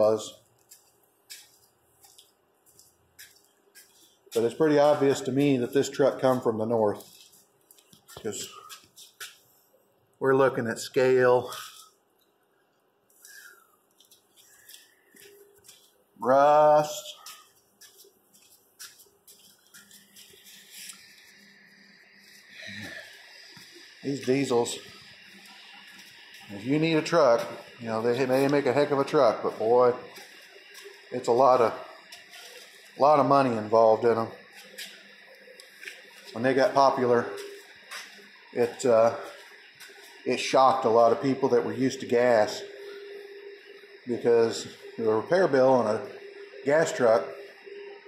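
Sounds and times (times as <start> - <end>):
faint steady hum: 0.0 - 48.0.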